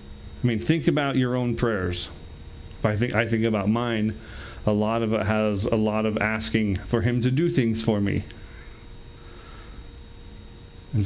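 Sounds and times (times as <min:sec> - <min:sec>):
faint constant hum: 0:00.0 - 0:11.0
low room rumble: 0:00.0 - 0:11.0.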